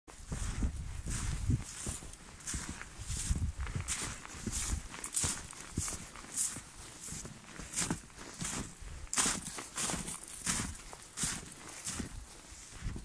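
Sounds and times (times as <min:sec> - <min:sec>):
footsteps in snow: 0:00.1 - 0:13.0.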